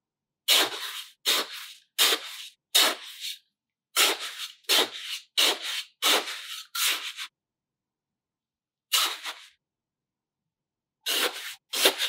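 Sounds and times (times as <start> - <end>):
plastic scoop scraping through sand: 0.5 - 3.4, 4.0 - 7.3, 8.9 - 9.6, 11.1 - 12.0.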